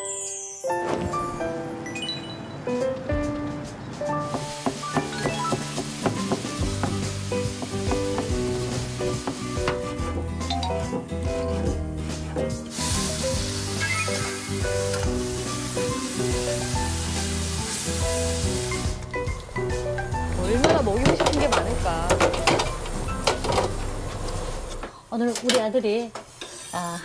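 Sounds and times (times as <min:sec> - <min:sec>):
background music: 0:00.0 - 0:24.6
food sizzling in a frying pan: 0:04.2 - 0:09.9, 0:12.7 - 0:24.7.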